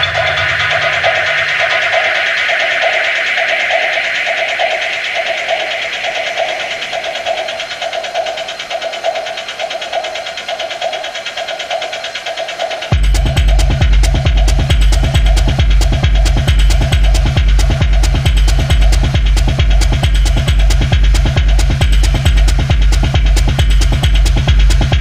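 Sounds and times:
pulsing synth tone: 0.0 - 11.1
deep bass: 12.9 - 25.0.

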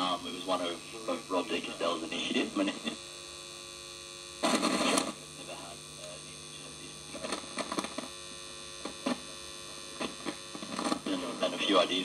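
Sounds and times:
electrical hum: 0.0 - 12.0
radio crackles and clicks: 0.0 - 12.0.

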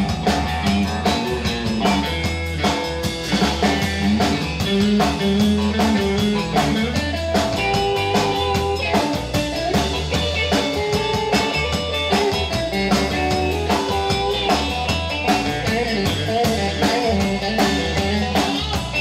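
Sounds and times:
drum kit steady beat: 0.0 - 19.0
electric guitar lead lines: 0.0 - 19.0.

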